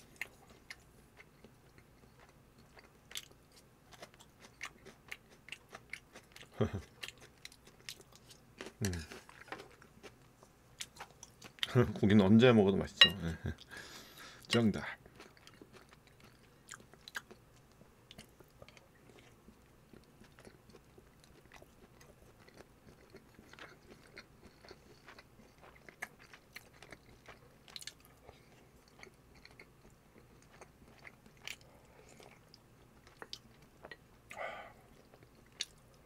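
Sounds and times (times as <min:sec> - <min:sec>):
person chewing food: 0:00.0 - 0:11.8, 0:13.0 - 0:36.0.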